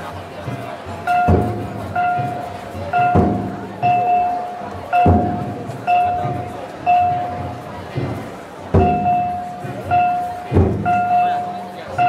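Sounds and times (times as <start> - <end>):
taiko drum strokes: 0.0 - 12.0
high held tone: 1.1 - 7.6, 8.8 - 12.0.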